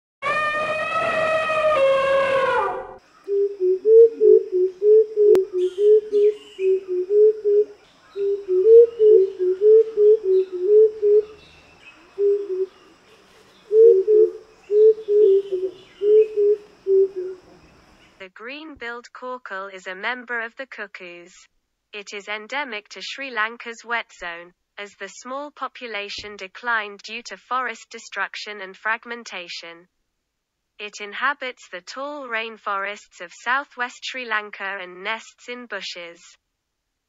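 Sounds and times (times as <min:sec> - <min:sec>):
bird low hooting calls: 0:00.2 - 0:18.2
faint bird chirps: 0:03.0 - 0:18.2.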